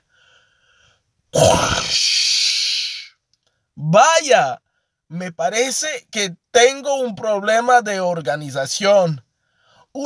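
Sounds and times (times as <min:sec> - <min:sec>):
man's grunt-like rumble and hiss: 0:01.4 - 0:03.1.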